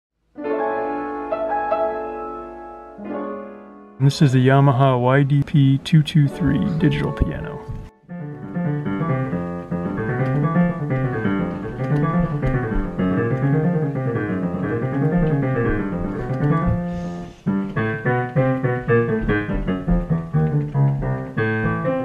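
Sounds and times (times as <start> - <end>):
piano runs of notes: 0.4 - 22.0.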